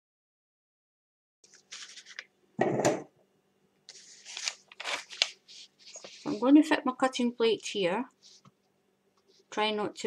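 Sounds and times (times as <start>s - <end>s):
light clicks and scrapes: 3.9s - 6.5s.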